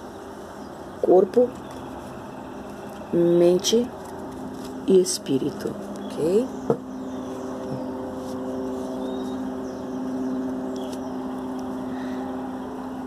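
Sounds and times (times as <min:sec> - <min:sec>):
motor engine droning: 0:01.7 - 0:13.0.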